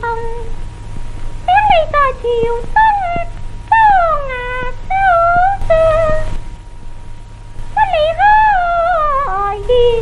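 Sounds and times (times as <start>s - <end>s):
record hum and hiss: 0.0s - 10.0s
opera music on old record: 7.8s - 10.0s.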